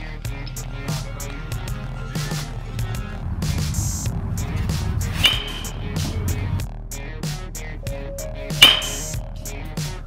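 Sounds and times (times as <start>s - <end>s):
background music with beat: 0.0s - 10.0s
bat hitting ball with ping: 5.2s - 6.0s, 8.6s - 9.2s.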